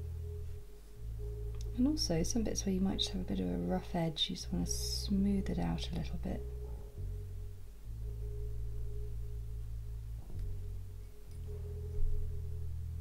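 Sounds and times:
soft sustained background music: 0.0s - 13.0s.

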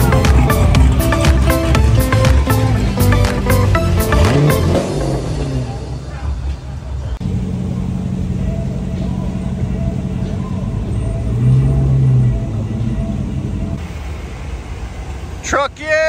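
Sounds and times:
passing cars engine drone: 0.0s - 15.5s.

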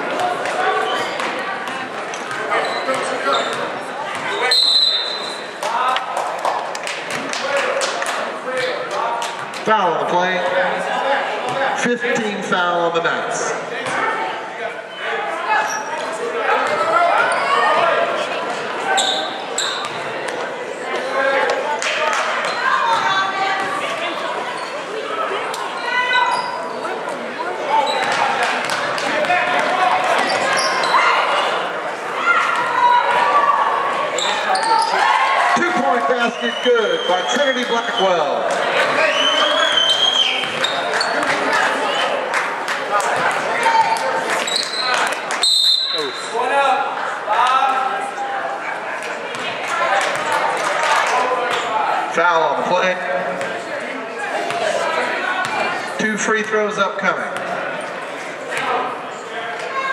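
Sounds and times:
players and spectators calling out: 0.0s - 59.9s.

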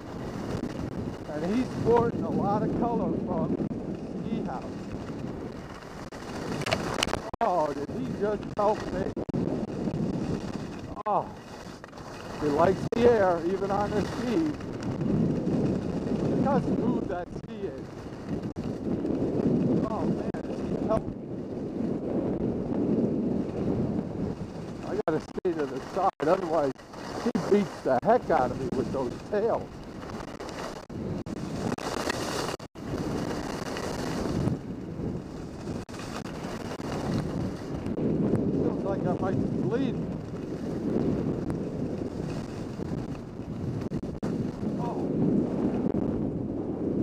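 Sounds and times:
skis sliding on snow: 0.0s - 21.0s, 21.6s - 46.0s
wind on microphone: 0.0s - 47.0s.

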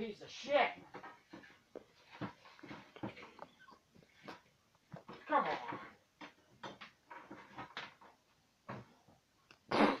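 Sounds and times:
tools and wood knocking: 0.8s - 3.8s, 4.9s - 9.0s.

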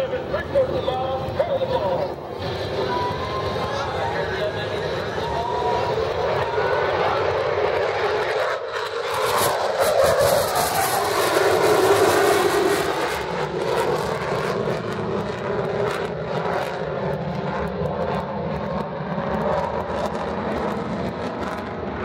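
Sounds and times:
jet engine roar: 0.0s - 22.0s.

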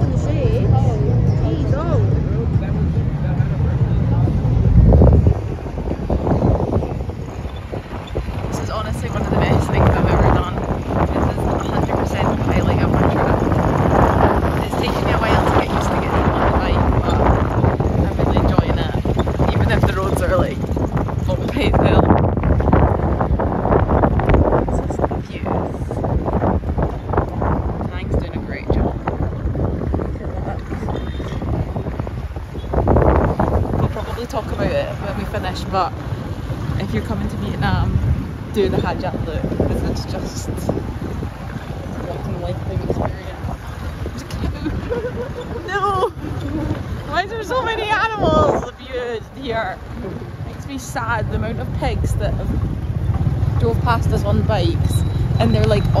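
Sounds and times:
boat engine rumble: 0.0s - 56.0s
wind buffeting microphone: 0.0s - 56.0s.

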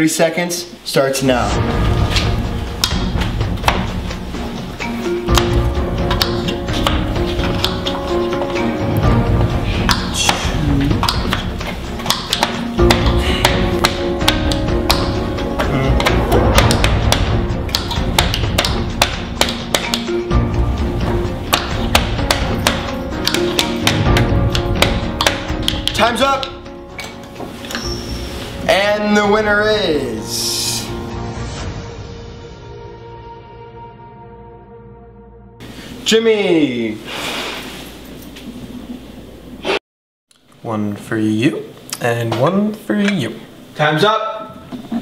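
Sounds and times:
background music: 0.0s - 37.4s
knife chopping on cutting boards: 9.8s - 20.1s, 21.5s - 26.5s.

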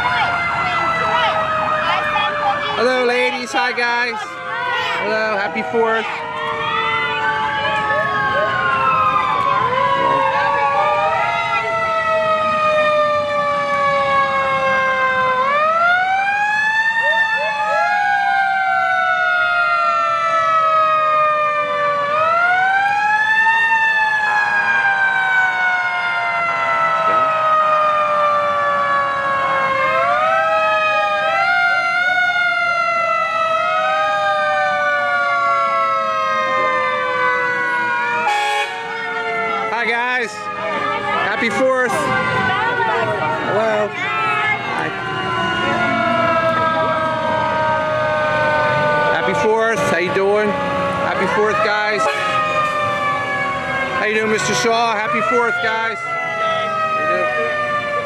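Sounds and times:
fire truck sirens wailing: 0.0s - 58.0s.

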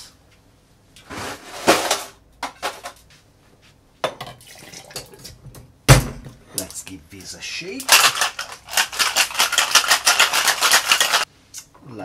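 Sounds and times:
ice cubes clattering into shaker: 7.9s - 11.3s.

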